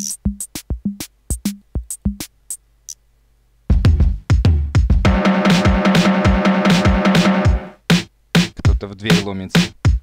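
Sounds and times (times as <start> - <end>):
drum machine beat: 0.0 - 2.6, 3.7 - 10.0
short sharp drum hits: 3.9 - 8.6.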